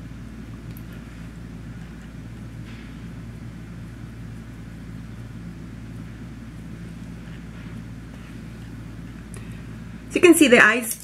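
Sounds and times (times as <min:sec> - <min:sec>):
steady low background hum: 0:00.0 - 0:11.0.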